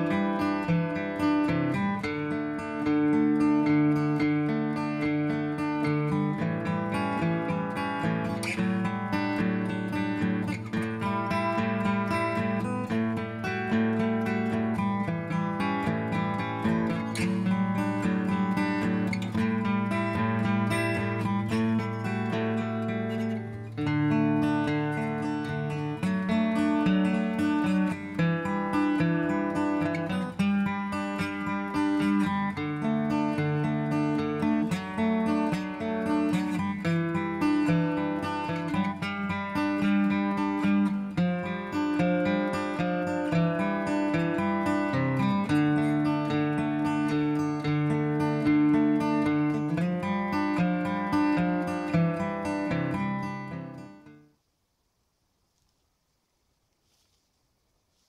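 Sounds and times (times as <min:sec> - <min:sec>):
acoustic guitar music: 0:00.0 - 0:54.5.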